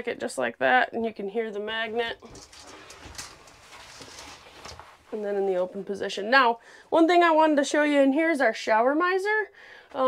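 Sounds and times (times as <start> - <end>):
shower curtain fabric rustling: 2.0 - 5.9.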